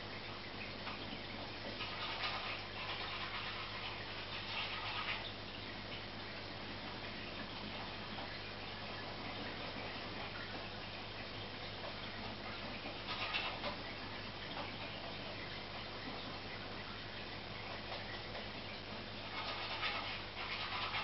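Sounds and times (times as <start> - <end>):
aquarium filter humming: 0.0 - 21.0
water trickling and bubbling: 0.0 - 21.0.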